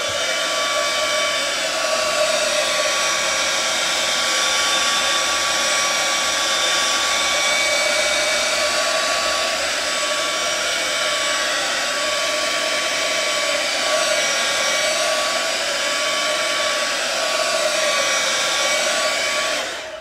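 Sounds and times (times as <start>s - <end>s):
hair dryer running: 0.0s - 20.0s.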